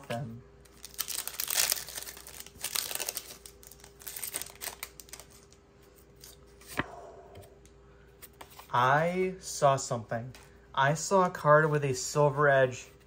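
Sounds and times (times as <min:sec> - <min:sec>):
foil wrapper tearing and crinkling: 0:00.6 - 0:05.5.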